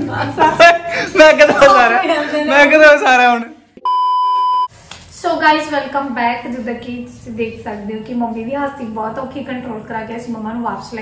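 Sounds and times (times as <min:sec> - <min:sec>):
high-pitched censor bleep: 0:03.8 - 0:04.7.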